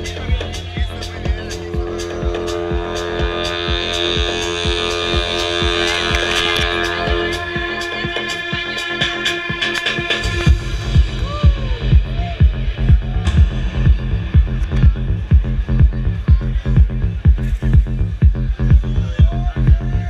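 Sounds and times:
held synth chords: 0.0s - 19.9s
electronic dance music: 0.0s - 20.0s
steady kick drum: 0.0s - 20.0s.

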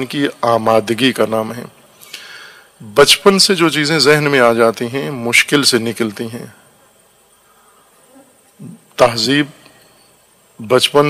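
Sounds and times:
faint buzzing hum: 0.0s - 11.0s.

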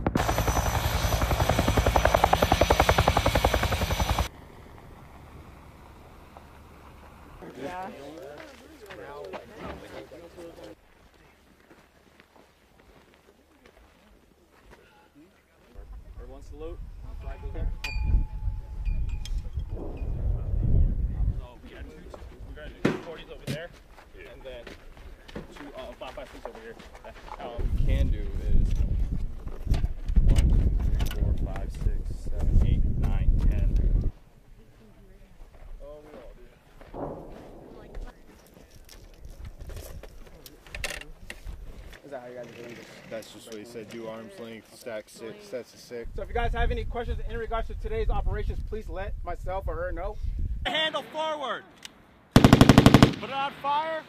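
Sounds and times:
low wind rumble: 15.8s - 22.6s, 27.6s - 34.2s.

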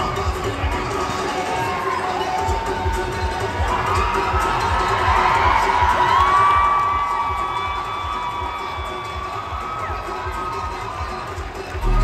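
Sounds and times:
crowd cheering and shouting: 0.0s - 12.0s
dance music with heavy bass: 8.8s - 12.0s.

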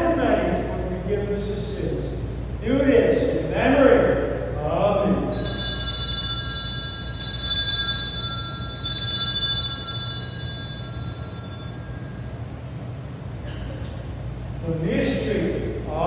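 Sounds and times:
altar bells ringing: 5.3s - 13.2s.

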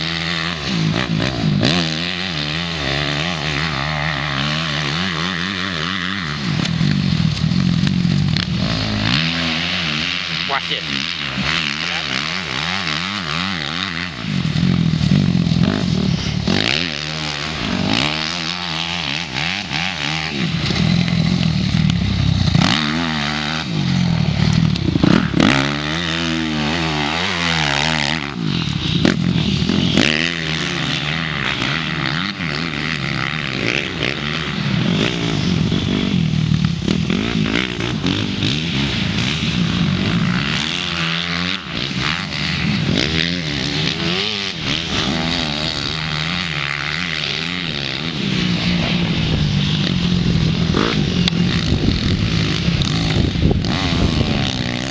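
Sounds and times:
dirt bike engine revving: 0.0s - 54.9s.

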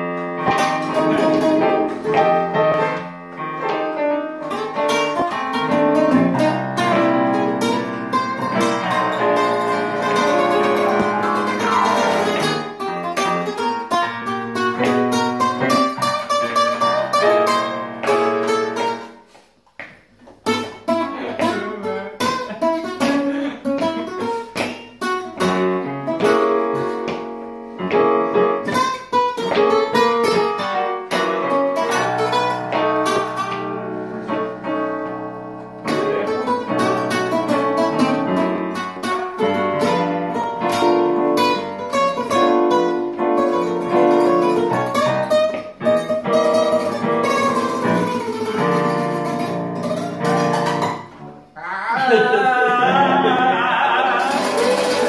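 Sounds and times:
guitars playing blues: 0.0s - 19.4s, 20.2s - 55.0s.

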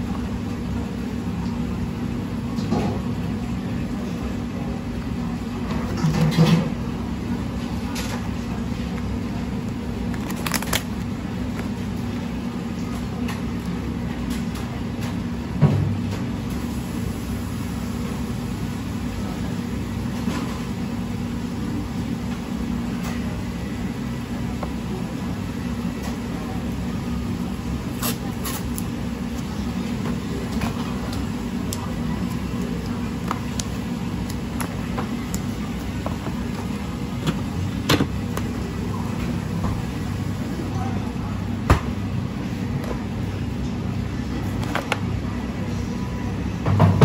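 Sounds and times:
kitchen machinery humming: 0.0s - 47.0s.

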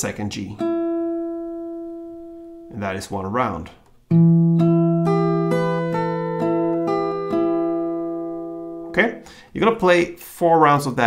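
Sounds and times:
fingerpicked acoustic guitar: 0.6s - 2.7s, 3.9s - 9.3s.

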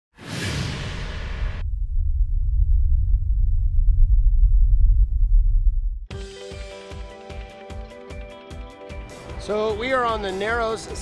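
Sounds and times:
whoosh: 0.2s - 6.0s
deep rumble: 0.4s - 6.1s.

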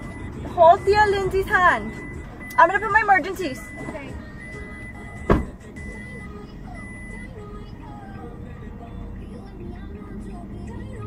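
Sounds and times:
car warning chime beeping: 0.0s - 8.3s
music: 0.0s - 11.0s
loud thump: 5.2s - 5.7s.

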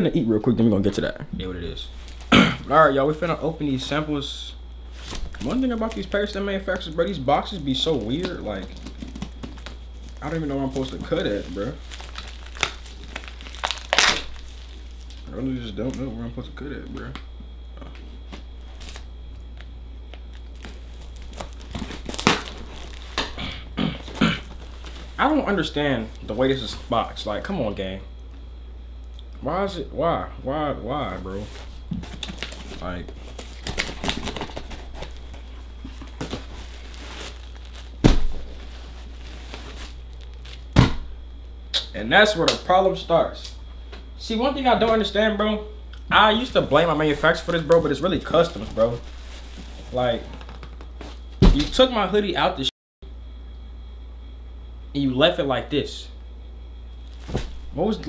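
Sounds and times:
plastic wrapping crinkling: 1.8s - 2.3s, 4.8s - 16.1s, 18.3s - 23.4s, 24.0s - 27.1s, 31.2s - 40.8s, 46.3s - 51.3s, 57.0s - 57.8s
packing tape crackling: 4.7s - 16.1s, 18.3s - 23.4s, 24.0s - 26.9s, 31.5s - 40.8s, 46.3s - 51.2s
cardboard box tearing: 32.1s - 35.1s
sharp thumps: 40.7s - 41.2s.

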